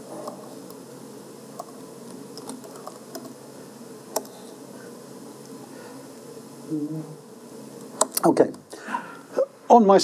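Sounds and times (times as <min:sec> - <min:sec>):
low room murmur: 0:00.0 - 0:10.0
laptop keyboard typing: 0:02.4 - 0:03.3.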